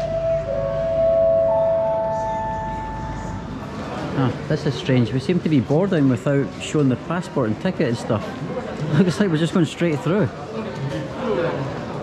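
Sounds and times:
public address chime: 0.0 - 3.6.

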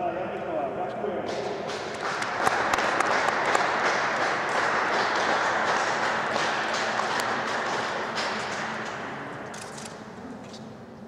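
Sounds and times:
crowd applauding: 1.3 - 9.4.

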